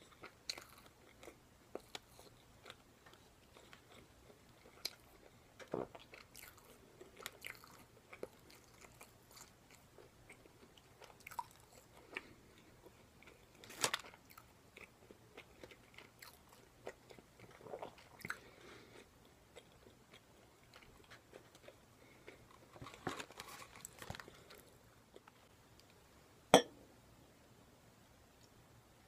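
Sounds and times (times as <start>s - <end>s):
chewing and biting food: 0.0s - 25.3s.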